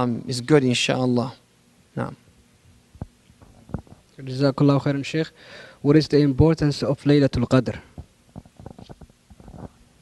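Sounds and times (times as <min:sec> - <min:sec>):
microphone handling knocks and rustles: 0:02.9 - 0:04.1, 0:07.9 - 0:09.8.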